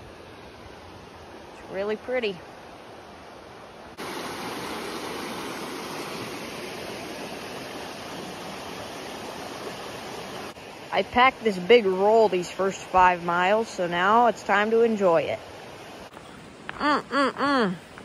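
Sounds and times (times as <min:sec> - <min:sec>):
stream water rushing: 0:00.0 - 0:18.0.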